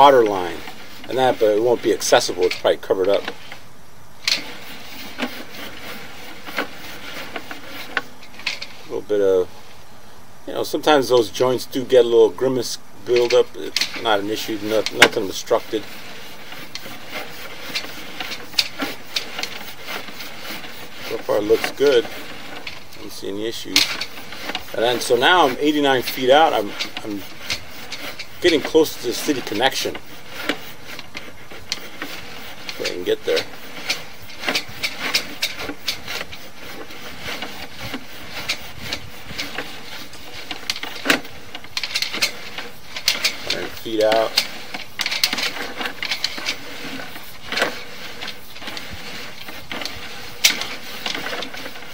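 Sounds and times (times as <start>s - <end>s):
cable rubbing in pipe hissing: 0.0s - 9.7s, 10.6s - 51.9s.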